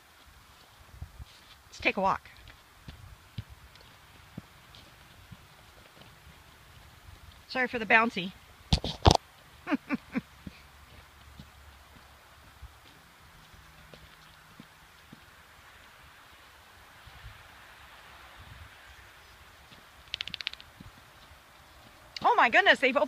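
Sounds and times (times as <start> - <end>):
footsteps on dirt road: 0.0 - 7.5, 8.4 - 17.9, 19.2 - 23.0.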